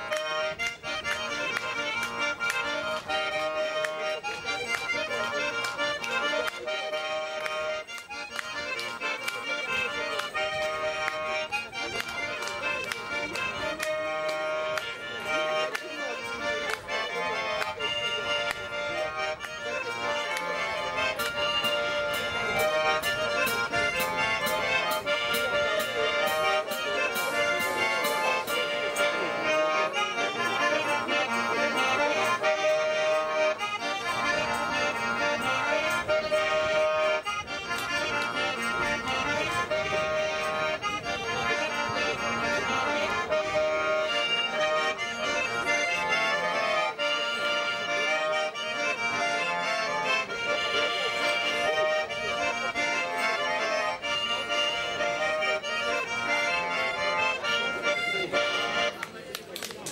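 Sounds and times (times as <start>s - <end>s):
button accordion playing tune: 0.0s - 59.8s.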